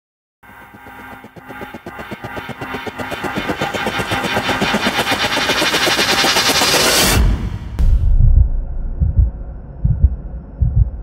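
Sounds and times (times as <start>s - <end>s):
glitchy pulse riser: 0.5s - 9.5s
heavy bass hit: 7.1s - 11.0s.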